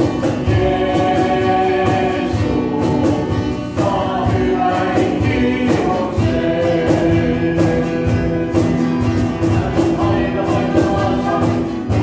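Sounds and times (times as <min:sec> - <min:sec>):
church choir singing: 0:00.0 - 0:08.8, 0:09.5 - 0:12.0
accompaniment with steady beat: 0:00.0 - 0:12.0.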